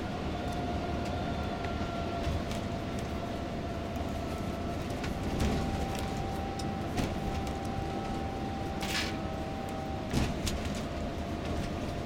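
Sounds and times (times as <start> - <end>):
engine and tyres rumbling: 0.0 - 12.0
mid-pitched whine: 4.0 - 12.0.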